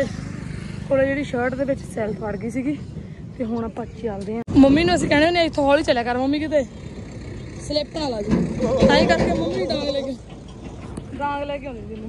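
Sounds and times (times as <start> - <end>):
people talking: 0.9 - 2.8, 3.4 - 6.7, 7.6 - 10.2, 11.1 - 12.0.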